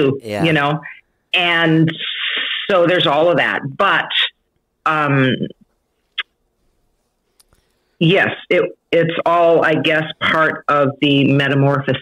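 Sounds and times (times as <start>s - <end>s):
mouth sound: 0.1s - 0.6s.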